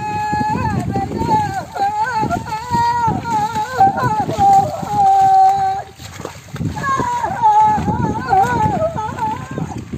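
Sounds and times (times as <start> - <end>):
hooves splashing through mud: 0.0 - 9.9.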